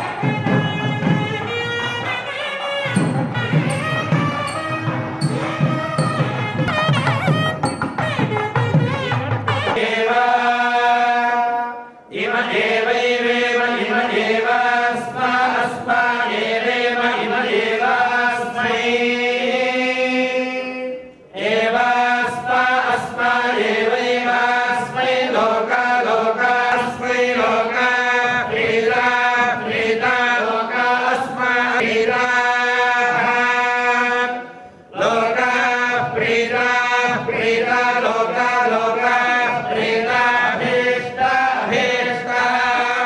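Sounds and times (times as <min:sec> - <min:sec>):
men chanting in unison: 0:09.8 - 0:20.6, 0:21.4 - 0:43.0.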